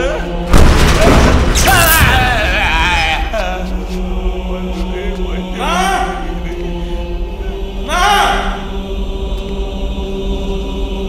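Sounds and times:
choir chanting: 0.0 - 11.0
loud booming hits: 0.4 - 3.0
low drone: 2.1 - 11.0.

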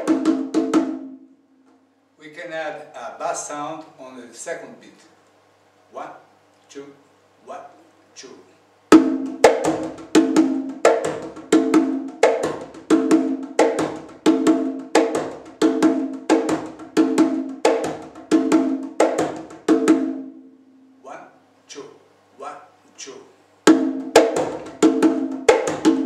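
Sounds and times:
conga drum played by hand: 0.0 - 1.2, 8.9 - 20.4, 23.7 - 26.0.

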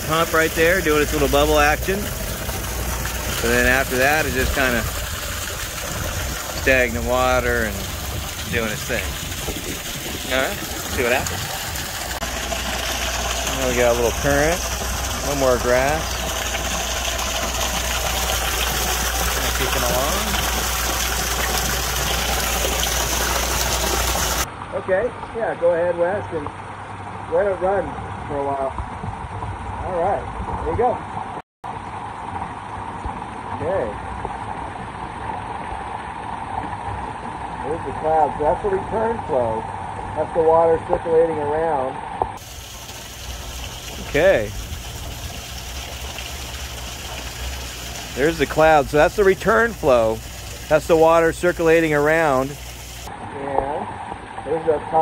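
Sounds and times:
steady low hum: 0.0 - 24.5
water gushing and bubbling: 0.0 - 24.5, 42.4 - 53.2.

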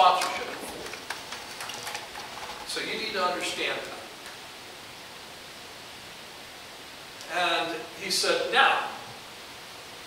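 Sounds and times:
steady recording hiss: 0.0 - 10.0.

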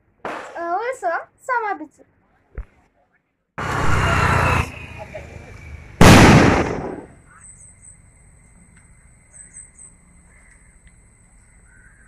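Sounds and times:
firework bang: 6.0 - 7.2.

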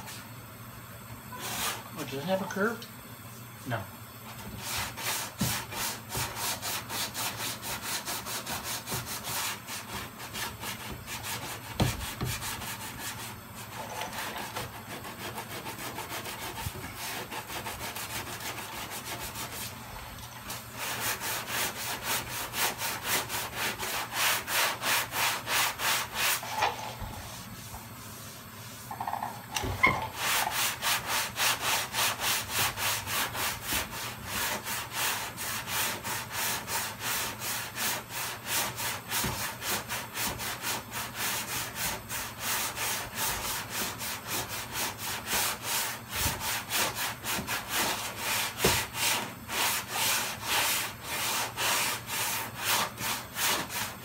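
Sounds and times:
sanding block rasping on metal: 4.6 - 19.7, 20.8 - 26.4, 30.2 - 54.0
knock: 11.8 - 12.4.

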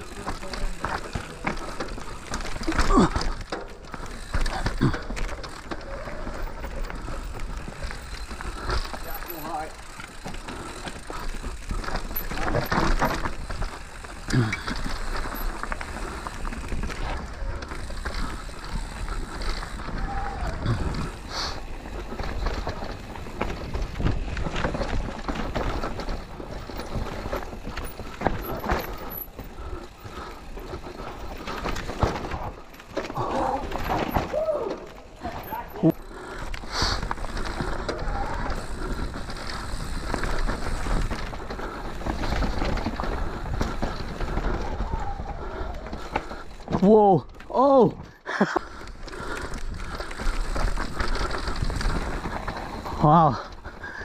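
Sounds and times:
bike knocks and rattles: 0.0 - 47.4
bike tyres rolling over dirt: 0.0 - 54.0.

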